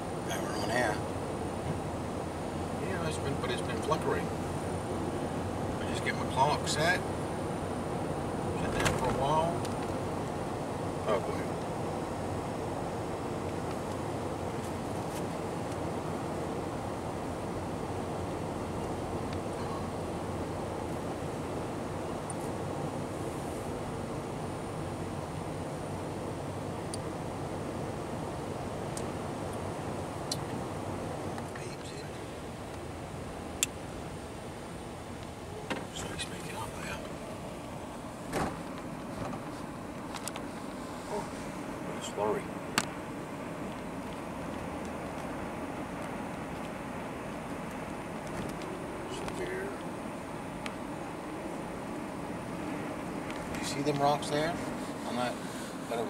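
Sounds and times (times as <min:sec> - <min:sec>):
car tyres and engine rumble: 0:00.0 - 0:56.0.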